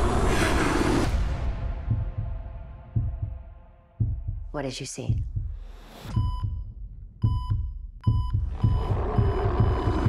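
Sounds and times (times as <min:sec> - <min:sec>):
deep low pulse: 0:00.0 - 0:10.0
patient monitor beeps: 0:07.2 - 0:10.0.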